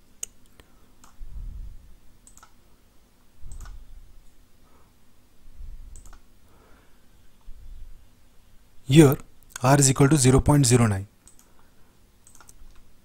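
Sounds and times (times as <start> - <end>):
computer mouse clicks: 0.2 - 1.2, 2.2 - 2.6, 3.5 - 4.4, 5.9 - 6.3, 11.2 - 11.6, 12.2 - 12.9.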